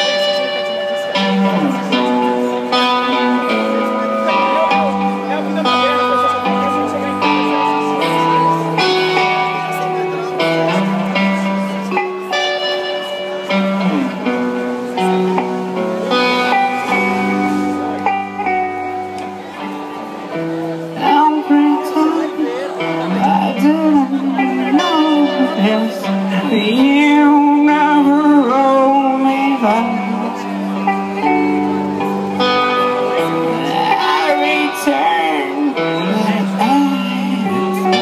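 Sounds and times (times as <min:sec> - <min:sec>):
bass guitar: 0:00.0 - 0:38.0
drums: 0:00.0 - 0:38.0
electric guitar chords: 0:00.0 - 0:38.0
person singing: 0:20.8 - 0:38.0.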